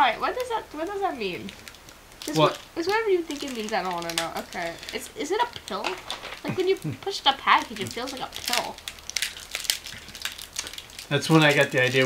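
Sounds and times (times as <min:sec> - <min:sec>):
candy package crinkling: 0:00.1 - 0:12.0.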